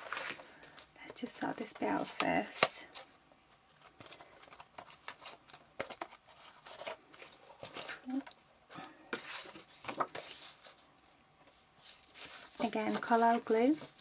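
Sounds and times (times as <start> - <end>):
paper rustling: 9.1 - 10.9, 11.5 - 14.0.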